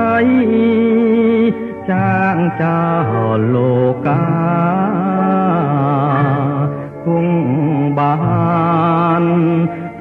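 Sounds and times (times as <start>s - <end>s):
pop song with wavering vocals: 0.0s - 10.0s.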